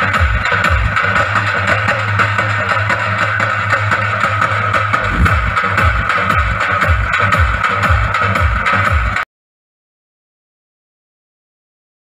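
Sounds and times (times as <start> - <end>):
folk drumming remix with electronic beat: 0.0 - 9.2
pounding bass drum: 3.9 - 9.2.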